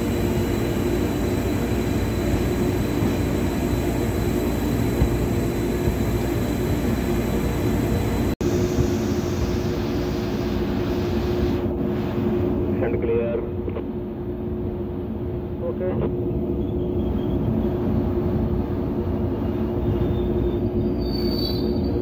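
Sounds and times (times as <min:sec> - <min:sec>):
train running: 0:00.0 - 0:22.0.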